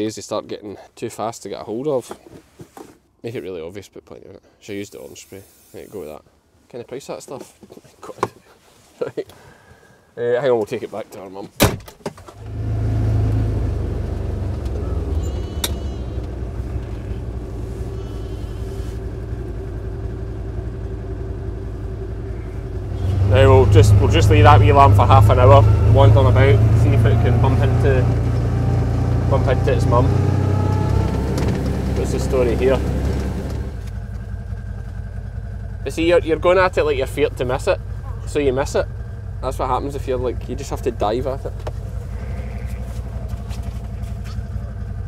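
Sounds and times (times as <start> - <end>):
vehicle engine rumbling: 12.2 - 45.0.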